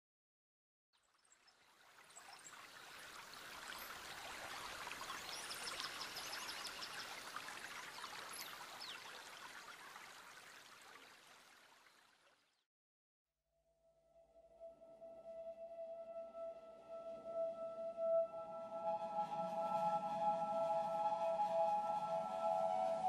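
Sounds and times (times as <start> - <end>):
running water: 1.0 - 12.6.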